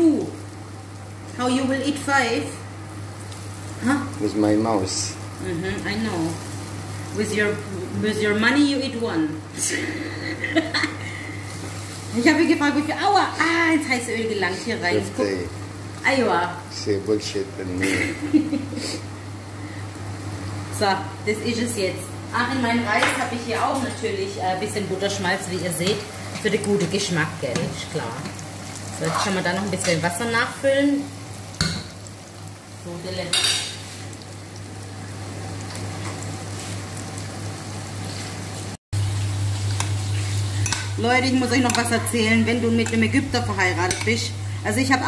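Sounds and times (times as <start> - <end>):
chicken frying in oil: 0.0 - 14.0, 24.7 - 45.0
food sizzling in a pan: 0.0 - 45.0
steady low hum: 39.0 - 45.0.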